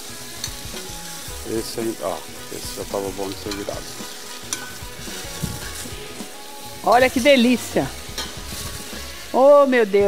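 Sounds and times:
chicken sizzling in a pot: 0:00.0 - 0:10.0.

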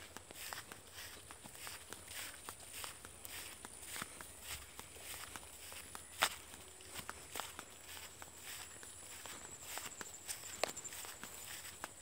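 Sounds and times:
footsteps crunching through dry leaves: 0:00.0 - 0:12.0
leaves rustling: 0:00.0 - 0:12.0.

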